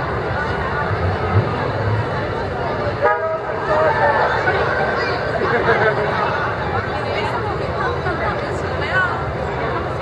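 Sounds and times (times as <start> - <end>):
street crowd chatter: 0.0 - 10.0
horn toot: 3.0 - 4.3.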